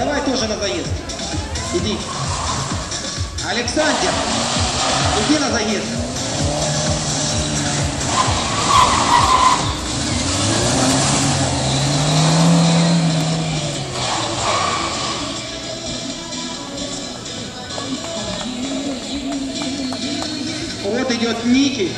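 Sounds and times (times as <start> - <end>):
background music: 0.0 - 21.9
tyres squealing: 0.0 - 21.9
car engine revving hard: 1.6 - 15.6.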